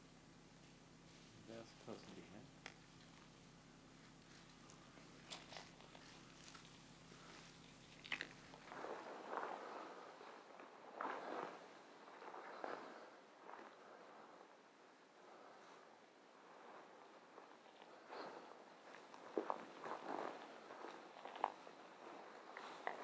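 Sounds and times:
footsteps crunching through undergrowth: 0:00.8 - 0:14.2, 0:17.2 - 0:23.0.

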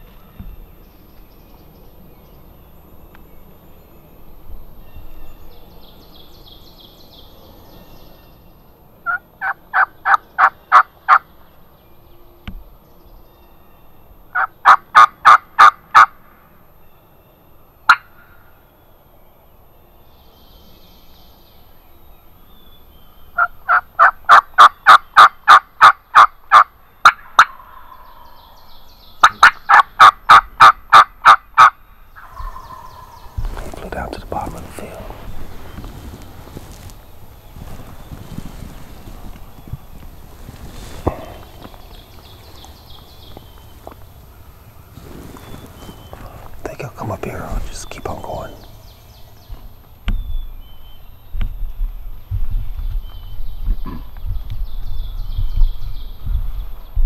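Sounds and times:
turkey yelps: 0:29.2 - 0:33.7.

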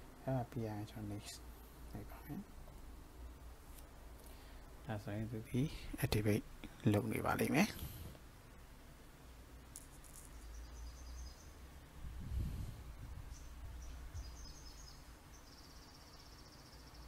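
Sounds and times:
faint high-pitched chirping: 0:09.8 - 0:11.8, 0:12.9 - 0:17.0.

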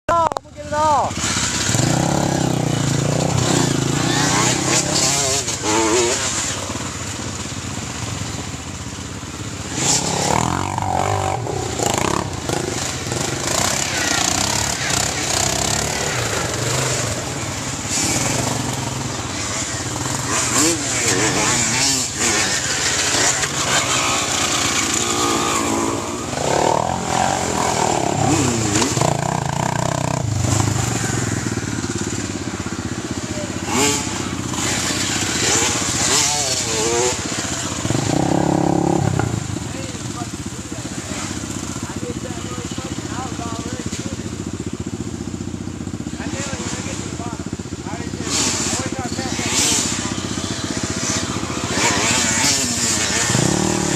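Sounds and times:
quad engines revving: 0:00.1 - 0:53.9.

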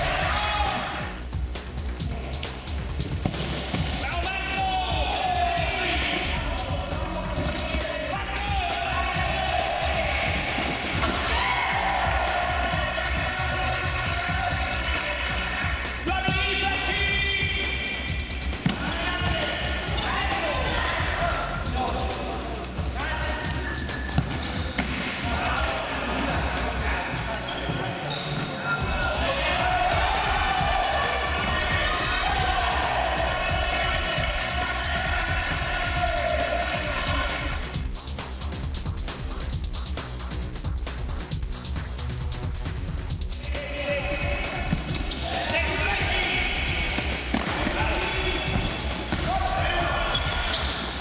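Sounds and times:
players shouting: 0:00.0 - 0:01.1, 0:03.9 - 0:22.2, 0:22.9 - 0:37.7, 0:43.4 - 0:51.0
ball kicked and bouncing: 0:24.0 - 0:25.0, 0:47.0 - 0:47.8.

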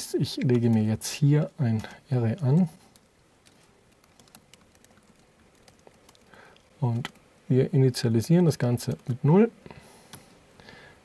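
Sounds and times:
computer keyboard typing: 0:02.3 - 0:06.4.

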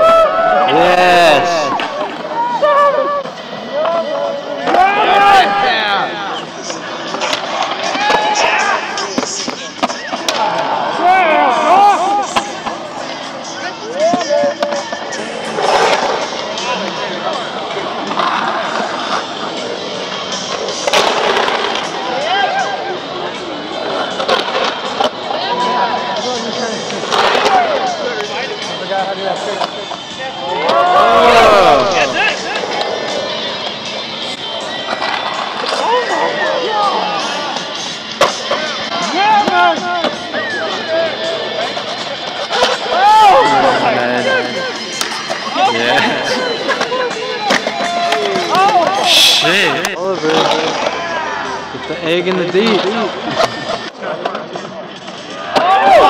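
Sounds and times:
people whooping and calling out: 0:00.0 - 0:06.1, 0:10.0 - 0:12.4, 0:22.1 - 0:23.0, 0:30.2 - 0:33.2, 0:39.0 - 0:41.8, 0:42.4 - 0:49.8, 0:55.3 - 0:56.0
skateboard wheels rolling on concrete: 0:00.0 - 0:56.0
skateboard impacts: 0:06.6 - 0:13.2, 0:20.3 - 0:22.1, 0:37.5 - 0:43.4.

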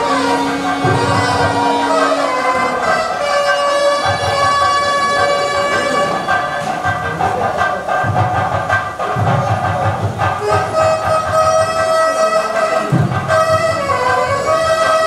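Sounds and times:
shrill reed instrument notes: 0:00.0 - 0:06.9, 0:10.4 - 0:15.0
low drum beats: 0:00.0 - 0:15.0.

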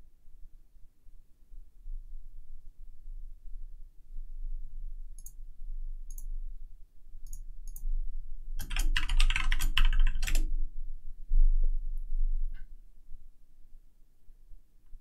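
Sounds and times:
typing on computer keyboard: 0:08.6 - 0:10.5.

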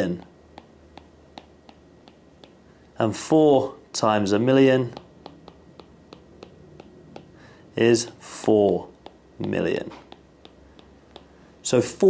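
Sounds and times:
stylus tapping on tablet screen: 0:00.0 - 0:02.6, 0:04.8 - 0:07.4, 0:08.6 - 0:11.4.

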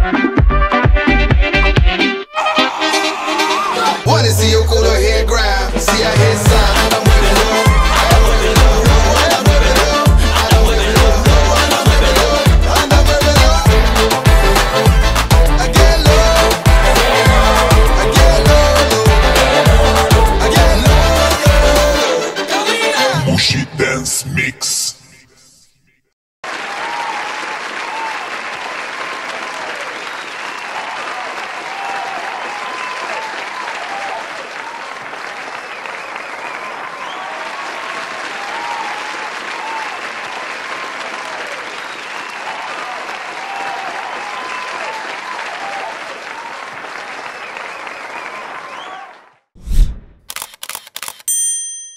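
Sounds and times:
high shouts and squeals: 0:02.3 - 0:23.8
audience applauding: 0:26.4 - 0:49.4
ringing chime: 0:51.2 - 0:51.9.

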